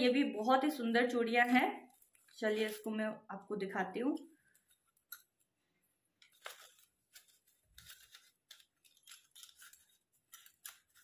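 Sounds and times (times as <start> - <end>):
wrapping rustling: 1.8 - 3.0, 6.2 - 11.0.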